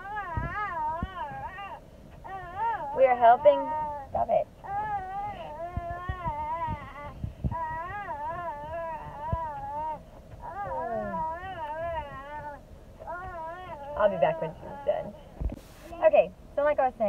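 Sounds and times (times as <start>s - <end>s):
child warbling calls: 5.2s - 15.0s.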